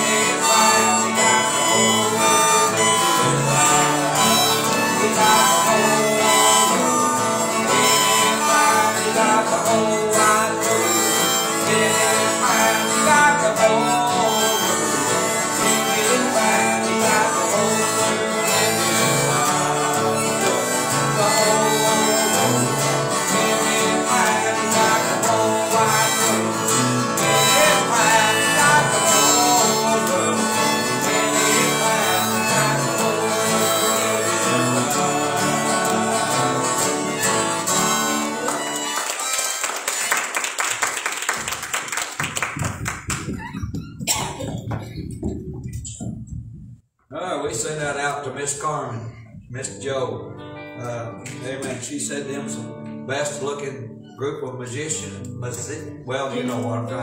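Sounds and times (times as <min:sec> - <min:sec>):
strummed acoustic guitars: 0:00.0 - 0:40.6, 0:49.6 - 0:57.0
harmonica melody: 0:00.0 - 0:40.8.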